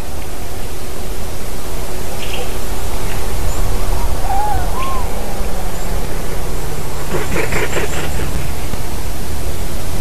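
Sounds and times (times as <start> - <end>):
whistled bird calls: 3.5 - 6.1
low rumble: 3.6 - 10.0.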